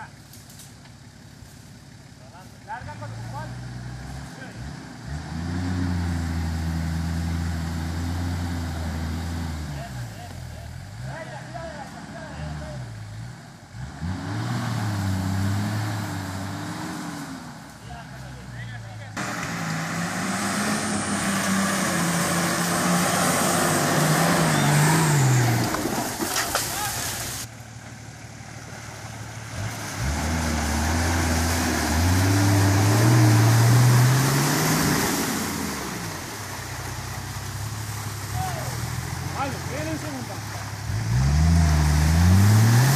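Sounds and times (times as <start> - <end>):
engine revving hard: 2.9 - 10.1, 13.7 - 17.6, 19.2 - 26.0, 29.5 - 36.1, 38.3 - 42.9
hiss of spinning tyres in mud: 19.4 - 27.5.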